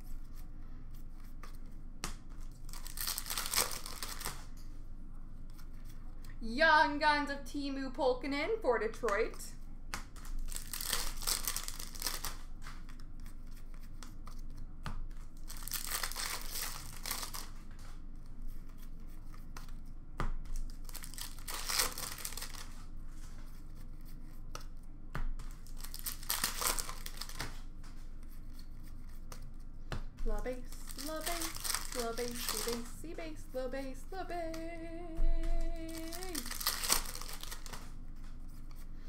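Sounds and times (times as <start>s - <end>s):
wrappers tearing and rustling: 2.5s - 4.4s, 10.2s - 12.5s, 15.4s - 17.6s, 20.5s - 22.8s, 25.6s - 27.4s, 30.3s - 33.0s, 35.5s - 37.9s.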